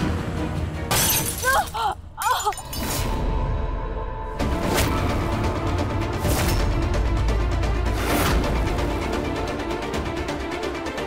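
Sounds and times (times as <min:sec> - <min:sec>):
shattering glass crash: 0:00.9 - 0:01.6.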